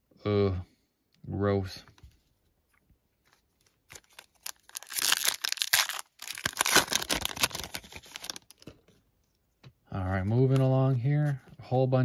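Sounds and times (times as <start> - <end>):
foil wrapper tearing and crinkling: 3.9 - 8.6.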